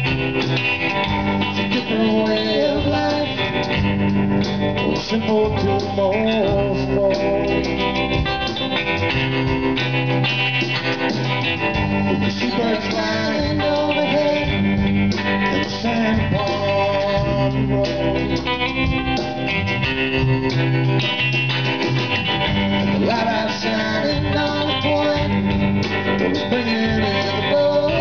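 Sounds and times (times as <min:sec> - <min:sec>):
bass guitar: 0:00.0 - 0:28.0
drums: 0:00.0 - 0:28.0
electric guitar lead: 0:00.0 - 0:28.0
person singing: 0:01.2 - 0:03.8, 0:04.8 - 0:08.0, 0:12.0 - 0:14.8, 0:15.4 - 0:18.7, 0:22.8 - 0:28.0.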